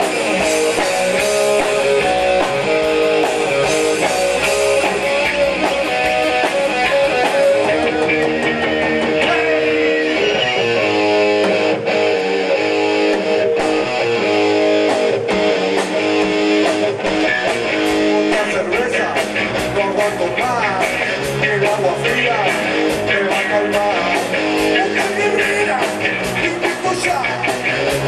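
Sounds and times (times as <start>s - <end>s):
rock band playing: 0.0s - 28.0s.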